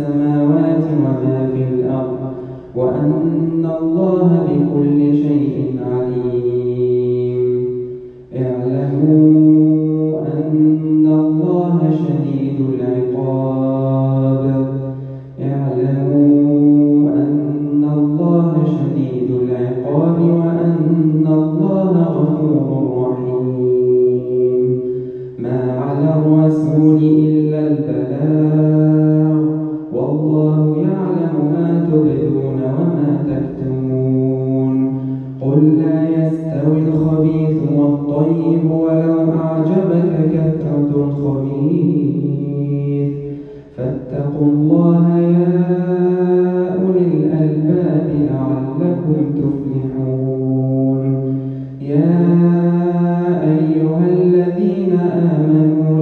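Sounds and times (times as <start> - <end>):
man reciting melodically: 0.0 - 56.0
short breaths: 2.3 - 2.8, 7.8 - 8.3, 14.9 - 15.4, 24.8 - 25.4, 35.0 - 35.4, 43.2 - 43.8, 51.2 - 51.8.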